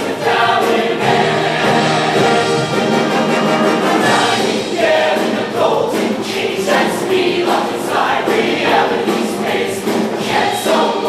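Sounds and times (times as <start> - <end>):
choir singing rhythmic phrases: 0.0 - 11.0.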